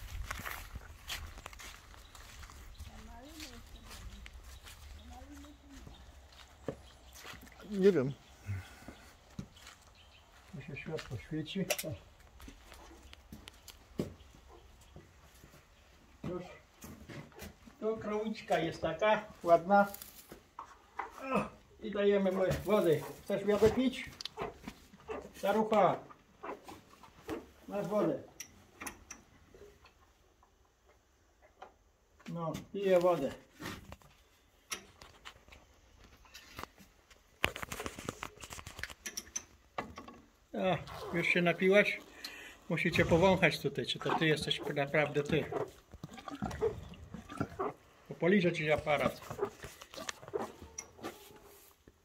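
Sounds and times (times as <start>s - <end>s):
cow breathing and sniffing: 49.0s - 51.9s.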